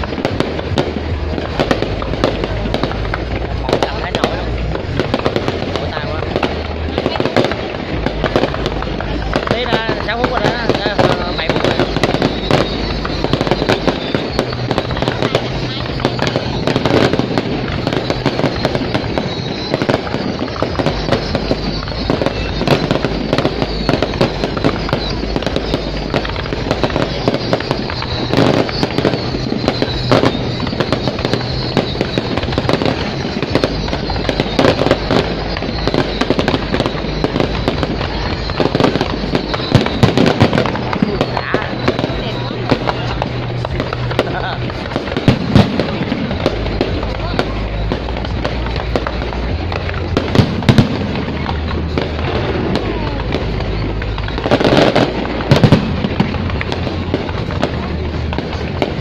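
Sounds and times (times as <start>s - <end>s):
fireworks bangs: 0.0s - 59.0s
fireworks crackling and popping: 0.0s - 59.0s.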